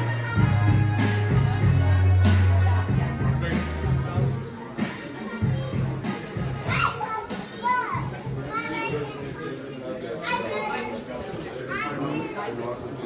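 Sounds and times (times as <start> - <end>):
background music: 0.0 - 8.6
chatter: 0.0 - 13.0.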